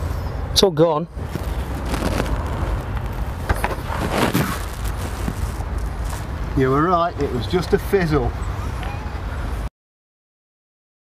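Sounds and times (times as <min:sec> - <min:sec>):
low outdoor rumble: 0:00.0 - 0:08.4
rustling handling noises: 0:01.2 - 0:06.6.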